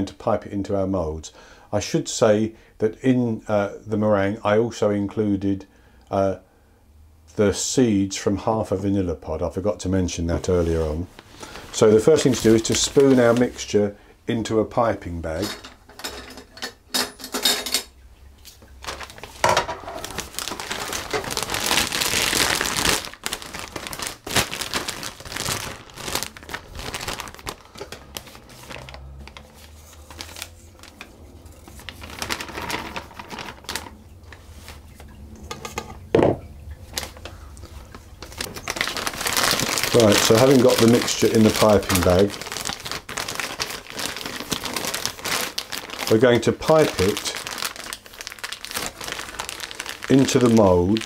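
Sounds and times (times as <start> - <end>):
plastic bag crinkling: 10.5 - 13.8, 18.5 - 35.2, 36.8 - 51.0.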